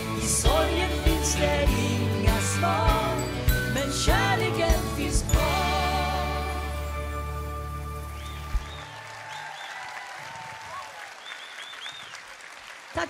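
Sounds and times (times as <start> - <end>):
high whistles from audience: 7.6 - 12.4
audience applause: 7.9 - 13.0.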